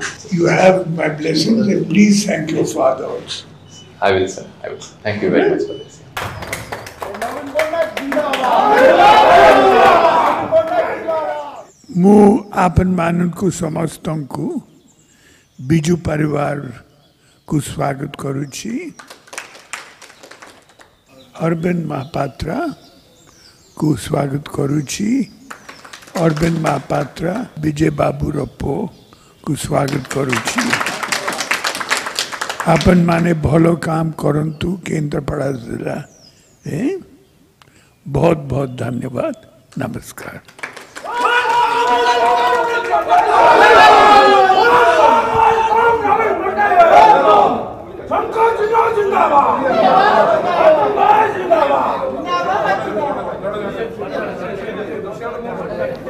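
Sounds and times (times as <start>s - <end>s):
crowd of men talking: 0.0s - 11.8s, 26.1s - 31.8s, 41.0s - 56.0s
scattered hand claps: 6.1s - 8.9s, 19.0s - 21.0s, 25.4s - 27.4s, 29.7s - 33.0s, 39.7s - 43.3s.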